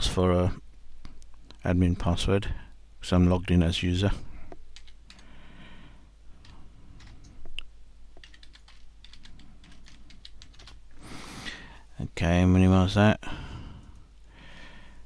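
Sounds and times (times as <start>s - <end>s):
computer keyboard typing: 4.7s - 5.3s, 6.4s - 7.3s, 8.2s - 10.9s.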